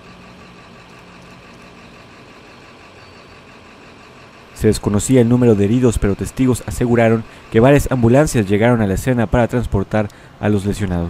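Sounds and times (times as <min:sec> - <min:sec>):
traffic noise: 0:00.0 - 0:11.0
vehicle engines idling: 0:00.0 - 0:11.0.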